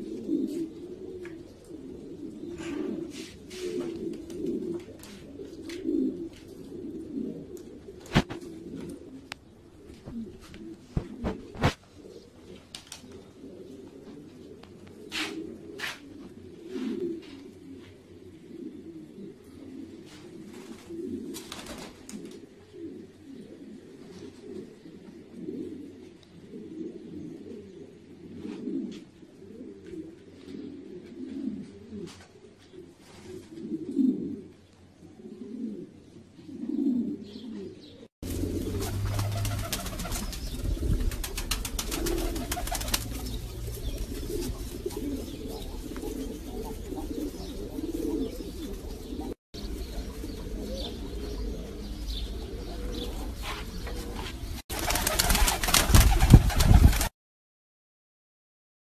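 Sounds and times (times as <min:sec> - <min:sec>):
pigeons cooing: 0:00.0 - 0:57.1.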